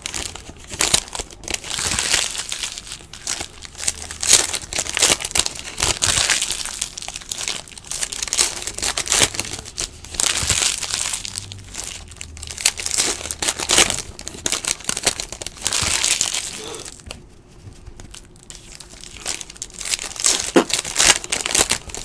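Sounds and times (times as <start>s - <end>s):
foil wrappers crinkling and tearing: 0.0s - 17.2s, 17.8s - 22.0s.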